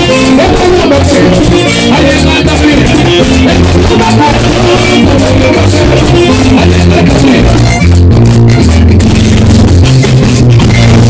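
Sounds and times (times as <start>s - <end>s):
saxophone: 0.0s - 9.4s
button accordion: 0.0s - 11.0s
electric bass line: 0.0s - 11.0s.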